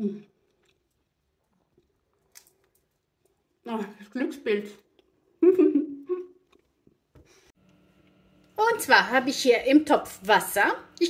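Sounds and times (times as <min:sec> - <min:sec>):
woman humming mmm: 0:05.4 - 0:06.4.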